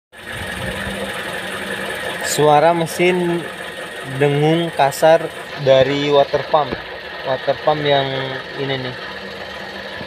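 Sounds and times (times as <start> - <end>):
car engine running: 0.1 - 10.0
rough water pump hum: 0.2 - 10.0.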